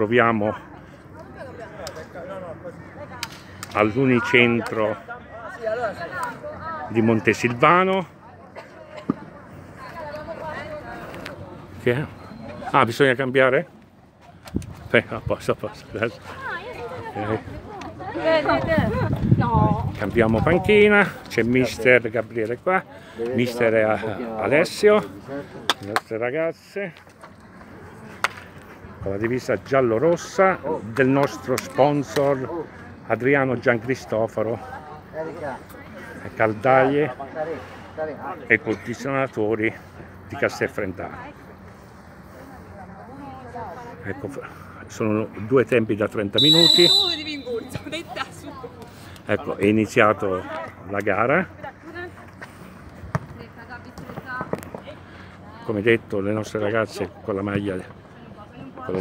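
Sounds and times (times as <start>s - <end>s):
ball kicked with sharp thuds: 53.1s - 53.4s.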